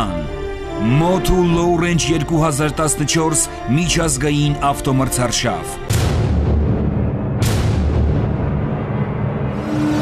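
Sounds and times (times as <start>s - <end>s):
deep rumbling boom: 5.9s - 10.0s
sharp hit: 5.9s - 10.0s.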